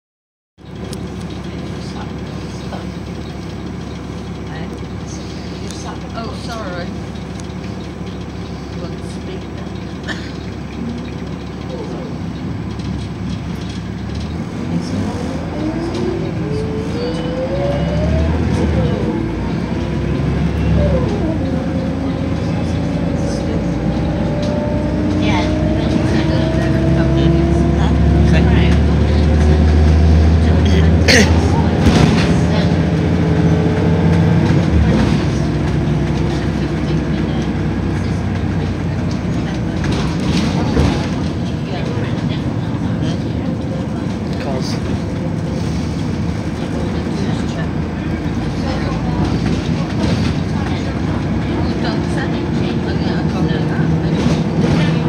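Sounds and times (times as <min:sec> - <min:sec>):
bus engine rumbling: 0:00.6 - 0:55.0
rising drivetrain whine: 0:00.6 - 0:55.0.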